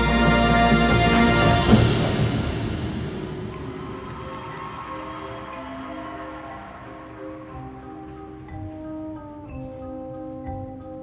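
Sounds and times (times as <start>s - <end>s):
marching band sustained chords: 0.0s - 4.4s.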